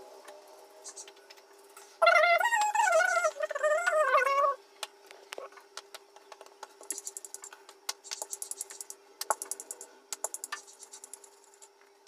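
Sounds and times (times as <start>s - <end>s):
high wavering voice-like sound: 2.0s - 4.6s.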